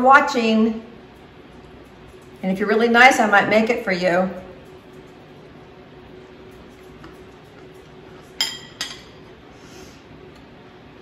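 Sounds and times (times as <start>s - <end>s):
fork clinking on plate: 8.3s - 9.2s.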